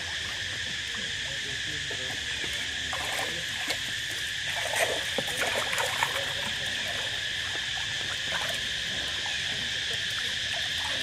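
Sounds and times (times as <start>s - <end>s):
high-pitched insect chorus: 0.0s - 11.0s
water sloshing: 2.1s - 11.0s.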